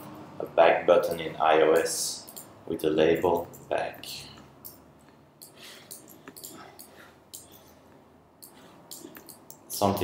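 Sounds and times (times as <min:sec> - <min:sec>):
keyboard and mouse clicks: 0:01.8 - 0:02.5, 0:05.4 - 0:07.6, 0:08.4 - 0:09.7.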